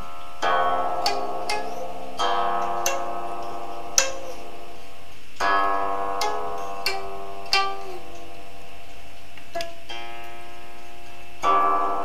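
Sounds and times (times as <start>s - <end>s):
zither plucked notes: 0.0s - 12.0s.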